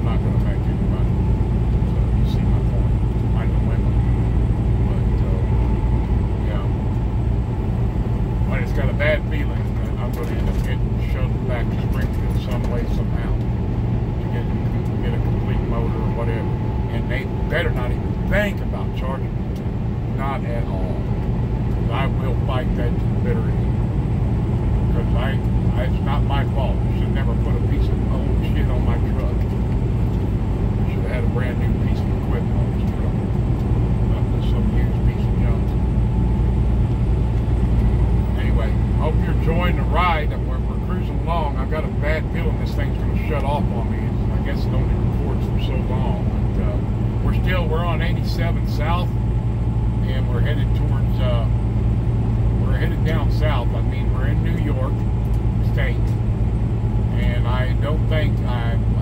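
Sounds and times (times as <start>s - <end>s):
diesel truck engine drone: 0.0s - 59.0s
tyres on highway: 0.0s - 59.0s.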